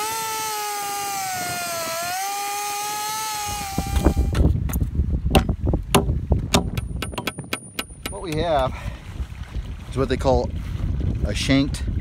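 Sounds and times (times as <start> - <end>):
chainsaw cutting wood: 0.0 - 4.6
wind rumbling on microphone: 0.0 - 12.0
hammer striking nail: 5.3 - 8.4.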